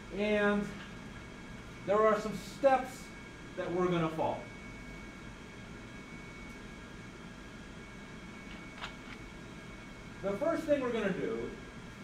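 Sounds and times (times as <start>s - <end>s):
low hiss and hum: 0.0s - 12.0s.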